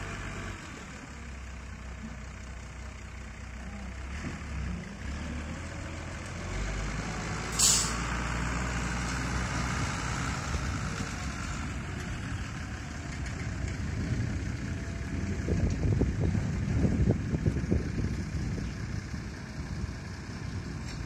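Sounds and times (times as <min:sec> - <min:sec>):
tractor engine running: 0:00.0 - 0:04.1, 0:04.7 - 0:21.0
truck air-brake hiss: 0:07.5 - 0:08.1.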